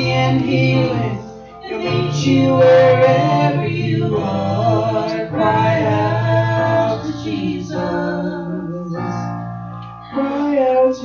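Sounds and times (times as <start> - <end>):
man and woman singing worship song: 0.0 - 9.4, 10.1 - 11.0.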